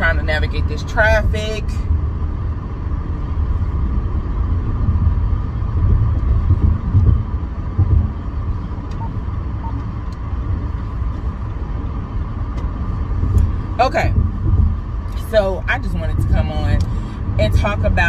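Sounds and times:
car road and engine rumble: 0.0 - 18.0.

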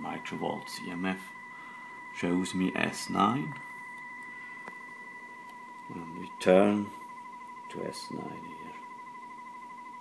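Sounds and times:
steady radio test tone: 0.0 - 10.0.

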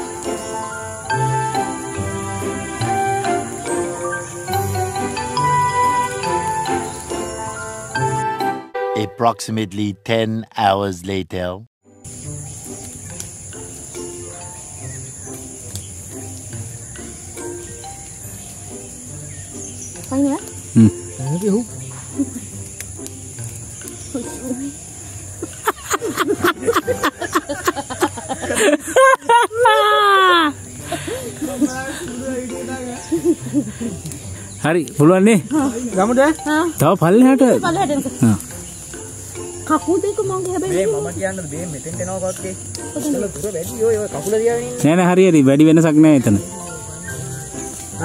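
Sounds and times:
insects chirring: 0.0 - 8.5, 10.6 - 48.0
low background notes: 0.0 - 11.2, 11.9 - 48.0
person making wordless calls: 20.2 - 21.7.

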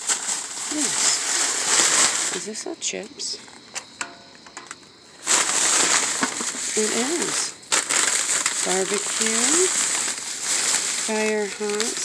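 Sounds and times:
plastic bag crinkling: 0.0 - 2.6, 4.5 - 12.0.

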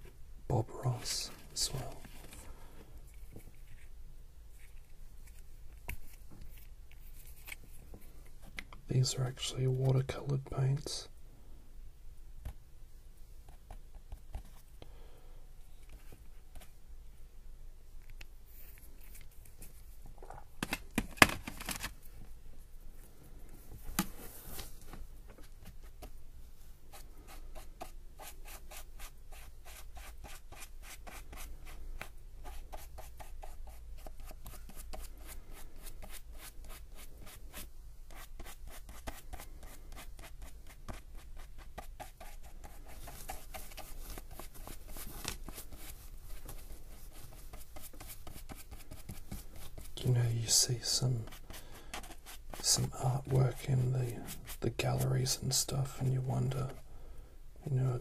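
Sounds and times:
scratchy paintbrush strokes on paper: 26.9 - 56.8.

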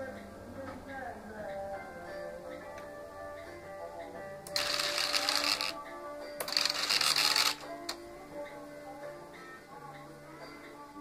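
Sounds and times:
electric mechanism whirring: 4.5 - 5.8, 6.4 - 7.8.

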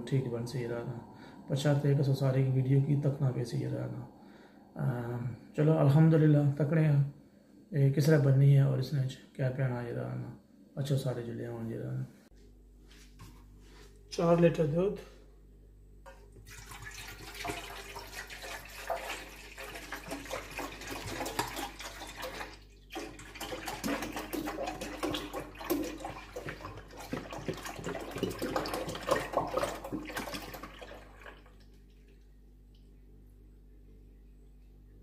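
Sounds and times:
milk pouring into a metal pot: 16.1 - 32.3.

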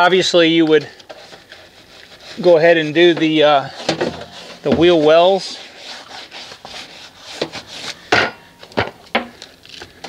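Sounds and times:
brush scrubbing a metal wheel: 0.0 - 8.1.

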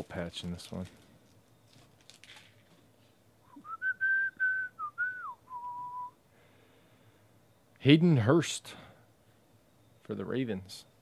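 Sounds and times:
cards rustling: 0.0 - 3.1
person whistling: 3.5 - 6.2.

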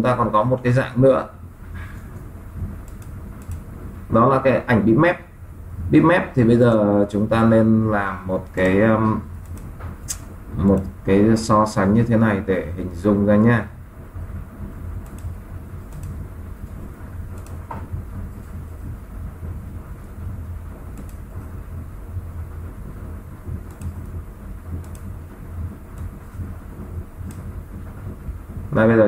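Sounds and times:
low background rumble: 0.0 - 29.0
computer mouse clicks: 2.8 - 3.7, 9.4 - 10.9, 15.0 - 16.2, 17.3 - 17.8, 21.0 - 21.5, 23.6 - 24.2, 24.8 - 25.1, 27.2 - 27.5.

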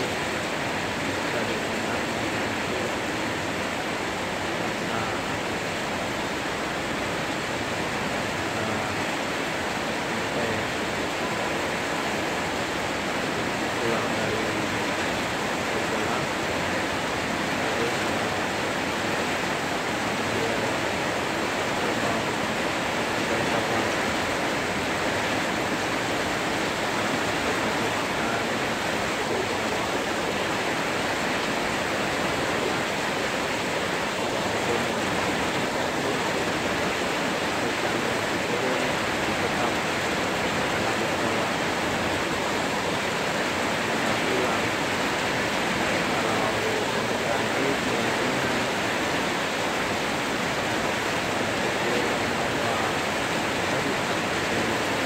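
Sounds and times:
heavy rain on metal roofs: 0.0 - 55.0.

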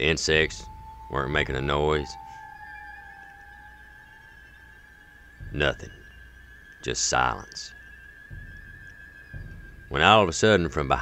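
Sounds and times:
eerie high drone: 0.0 - 11.0.

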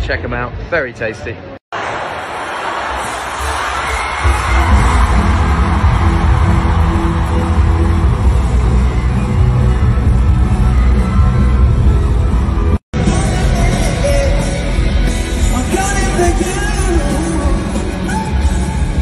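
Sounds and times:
stadium crowd cheering: 1.7 - 14.0
loud music with heavy bass: 3.0 - 19.0.

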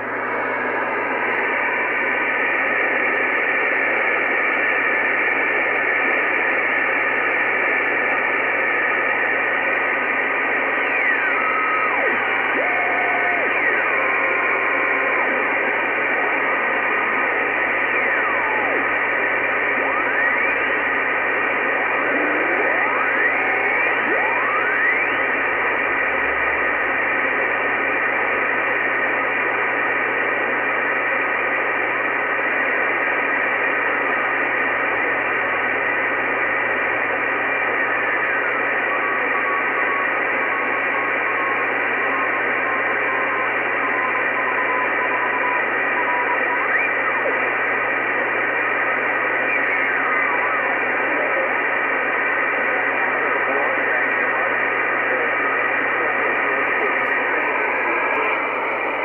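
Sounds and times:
radio band noise hiss: 0.0 - 59.0.

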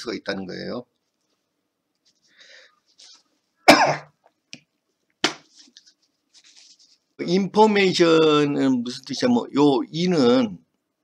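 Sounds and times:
sharp cough: 3.7 - 4.2.

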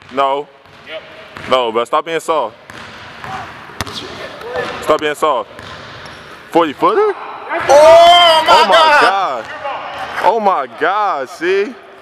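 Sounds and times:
basketball bouncing on hardwood: 2.7 - 4.0
faint voices in gym: 3.3 - 5.4.

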